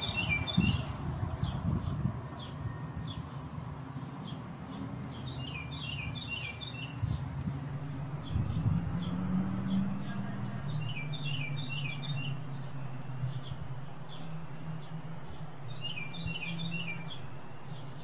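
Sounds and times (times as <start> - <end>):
birds chirping: 0.0 - 18.0
steady low hum: 7.0 - 18.0.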